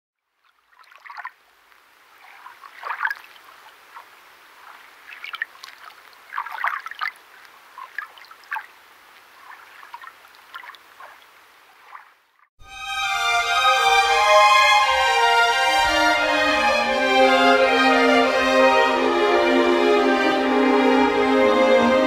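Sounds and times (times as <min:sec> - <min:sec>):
water dripping and trickling: 0:00.2 - 0:12.5
soft hiss: 0:01.3 - 0:06.4.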